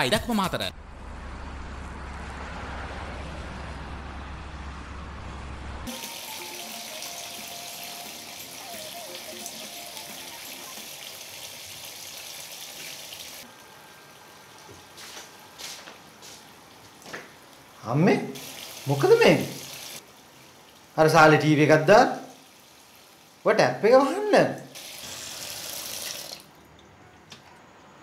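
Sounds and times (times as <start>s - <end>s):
deep hum: 0.7s - 5.9s
water running from tap: 5.9s - 13.5s, 16.9s - 26.6s.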